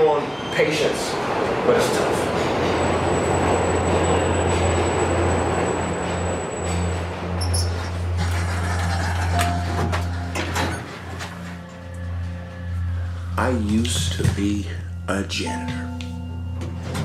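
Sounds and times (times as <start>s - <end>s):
subway train rail noise: 0.0s - 15.1s
high whine: 2.9s - 17.0s
low hum: 6.6s - 17.0s.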